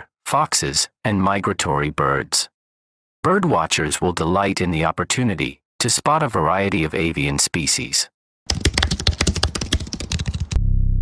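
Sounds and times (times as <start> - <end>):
rapid typing clicks: 8.5 - 10.6.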